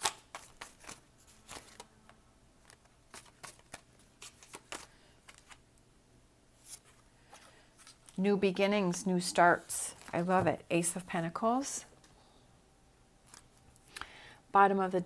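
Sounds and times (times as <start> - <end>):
cards being shuffled: 0.0 - 1.9, 2.6 - 5.6, 6.6 - 8.2, 13.2 - 13.6.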